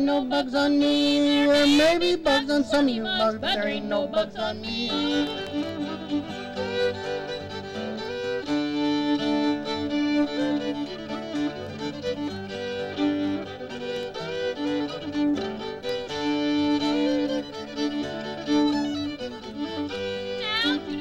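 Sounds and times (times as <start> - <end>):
person singing: 0.0 - 7.3, 19.8 - 21.0
acoustic guitar accompanying: 0.0 - 21.0
fiddle playing: 0.0 - 21.0.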